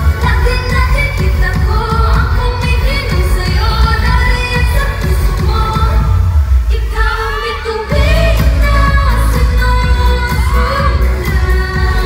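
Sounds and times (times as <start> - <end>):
band with heavy bass and drums: 0.0 - 12.0
woman singing into a microphone: 0.0 - 12.0.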